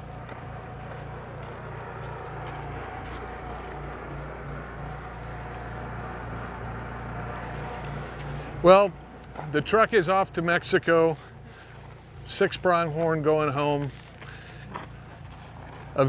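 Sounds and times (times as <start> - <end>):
engine humming: 0.0 - 16.0.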